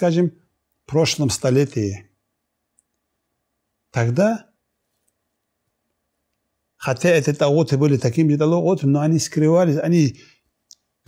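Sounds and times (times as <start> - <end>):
man speaking: 0.0 - 2.1, 3.9 - 4.6, 6.8 - 10.3.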